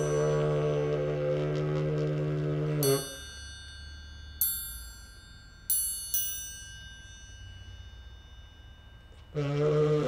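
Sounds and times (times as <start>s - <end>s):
bell-like metallic strikes ringing: 0.0s - 1.1s, 2.8s - 9.4s.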